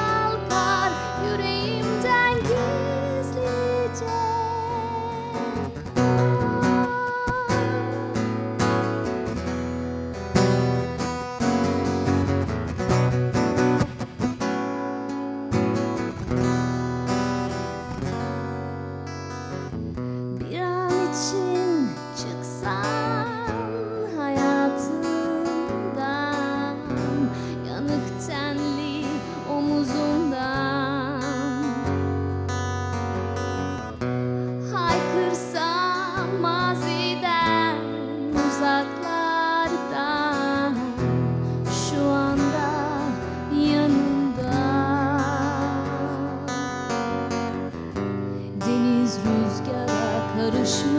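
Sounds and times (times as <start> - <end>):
woman singing with vibrato: 0.0 - 8.8, 20.4 - 32.2, 34.6 - 47.6, 48.4 - 50.9
acoustic guitar strumming chords: 0.0 - 50.9.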